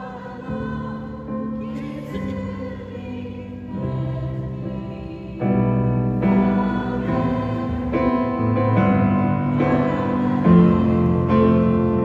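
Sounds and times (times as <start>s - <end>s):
choir singing held chords: 0.0s - 12.0s
grand piano: 0.0s - 12.0s.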